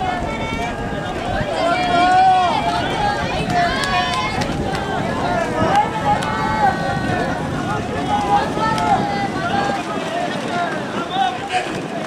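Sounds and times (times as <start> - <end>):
voices shouting: 0.0 - 12.0
wind noise on microphone: 0.0 - 12.0.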